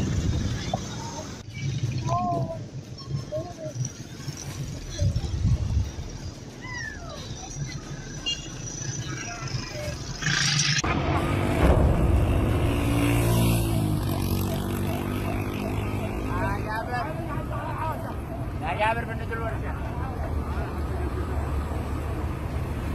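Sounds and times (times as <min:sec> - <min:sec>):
people's voices: 0:00.5 - 0:10.3, 0:14.2 - 0:22.1
low rumble: 0:10.8 - 0:13.4.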